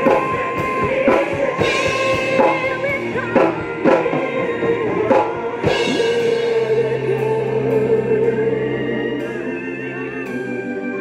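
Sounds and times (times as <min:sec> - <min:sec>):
drum kit strokes: 0:00.0 - 0:11.0
gospel choir singing: 0:00.0 - 0:11.0.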